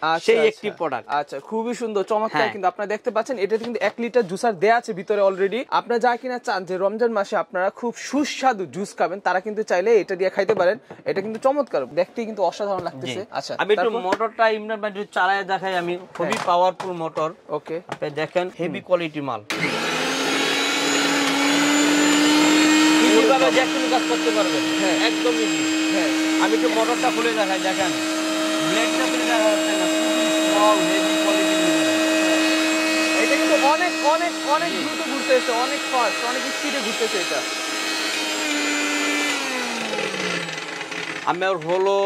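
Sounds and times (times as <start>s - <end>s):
blender motor whining: 19.5s - 42.0s.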